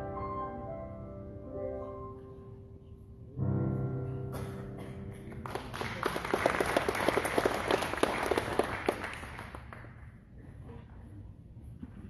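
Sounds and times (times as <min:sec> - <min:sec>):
congregation applauding: 0:05.1 - 0:10.2.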